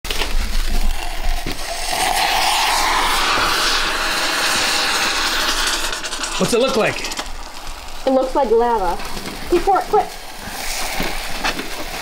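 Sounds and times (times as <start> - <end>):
crackling: 0.0 - 12.0
thermite burning with hissing roar: 0.1 - 12.0.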